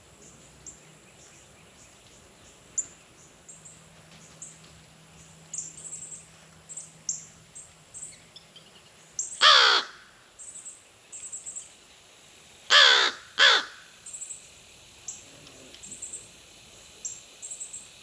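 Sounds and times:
crow cawing: 0:09.4 - 0:10.1, 0:12.7 - 0:13.9.

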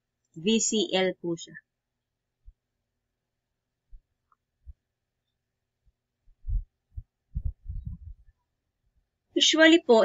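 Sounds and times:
low dull thumps: 0:06.3 - 0:08.3.

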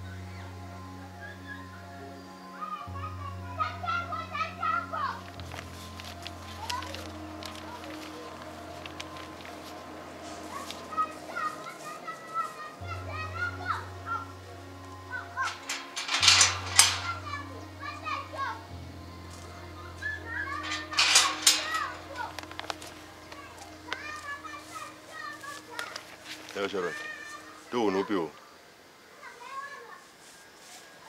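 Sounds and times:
background music drone: 0:00.0 - 0:29.0
faint steady hum: 0:00.0 - 0:29.2
children shouting at play: 0:02.6 - 0:05.3, 0:10.4 - 0:14.5, 0:15.1 - 0:18.8, 0:19.7 - 0:28.3, 0:29.1 - 0:30.1.

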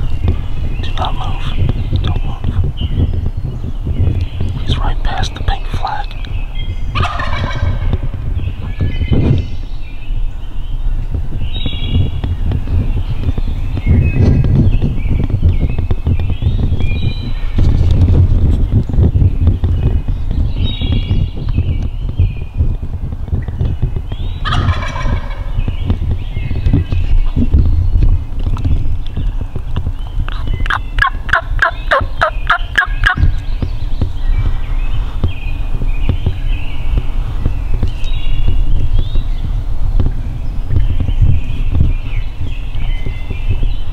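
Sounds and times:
small birds chirping: 0:00.0 - 0:43.9
steady low rumble: 0:00.0 - 0:43.9
turkey gobbling: 0:07.0 - 0:07.9, 0:24.4 - 0:25.5, 0:30.3 - 0:33.2.

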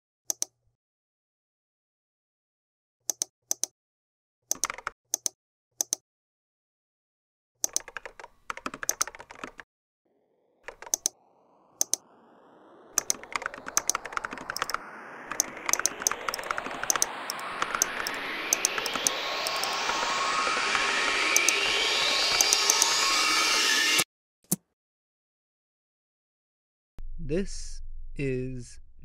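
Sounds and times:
rising swell of noise: 0:10.1 - 0:24.0
keyboard key clicks: 0:10.7 - 0:11.1.

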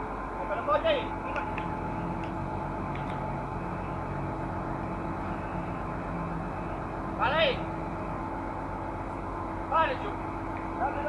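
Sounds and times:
crane diesel engine running: 0:00.0 - 0:11.0.

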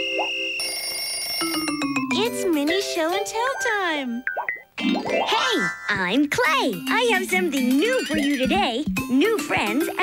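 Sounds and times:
electronic jingle tones: 0:00.0 - 0:02.4, 0:03.6 - 0:05.9, 0:07.8 - 0:08.6.

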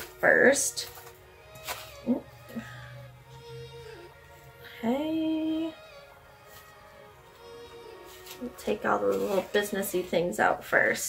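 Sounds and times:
soft background music: 0:00.0 - 0:11.0
sharp rustle: 0:08.1 - 0:10.1.

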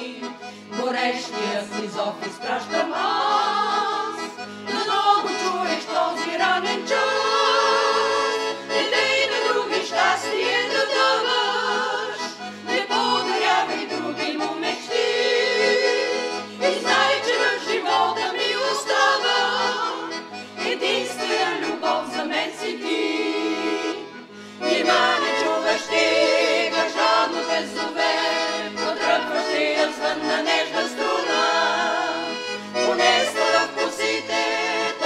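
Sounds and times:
group singing: 0:00.0 - 0:35.0
piano accordion: 0:00.0 - 0:35.0.

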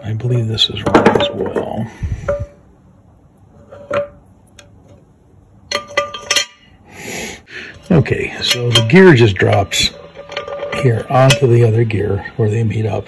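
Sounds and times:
small metal parts clinking: 0:05.7 - 0:06.7, 0:08.4 - 0:11.7.

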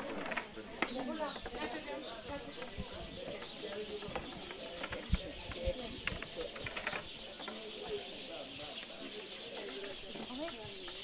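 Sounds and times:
birds calling: 0:00.0 - 0:11.0
faint distant voices: 0:00.0 - 0:11.0.

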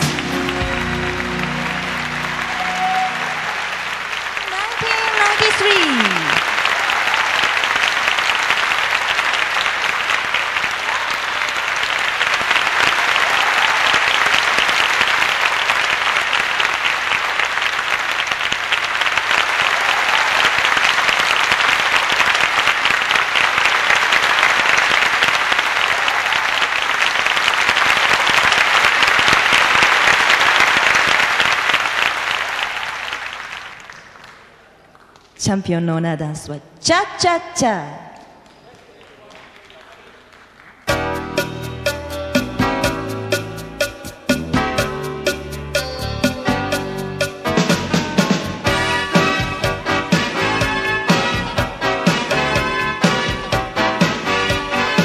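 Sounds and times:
dance music: 0:00.0 - 0:06.4, 0:40.9 - 0:55.0
audience applauding: 0:00.0 - 0:35.4, 0:38.2 - 0:41.0.

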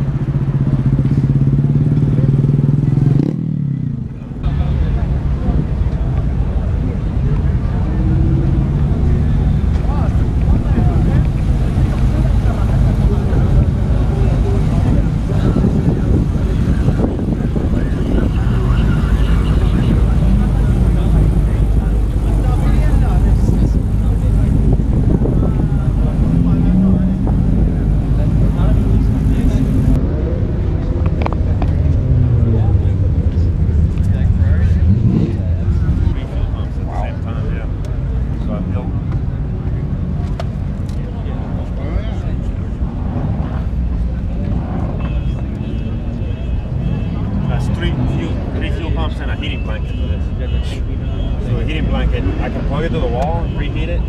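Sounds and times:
motorcycle engine running: 0:00.0 - 0:04.3
crowd chatter: 0:00.0 - 0:54.0.

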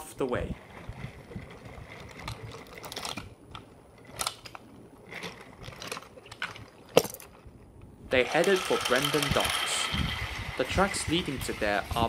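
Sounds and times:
toy train rolling on wooden track: 0:00.0 - 0:06.7, 0:08.1 - 0:12.0
wheels and couplings clicking: 0:00.0 - 0:12.0.

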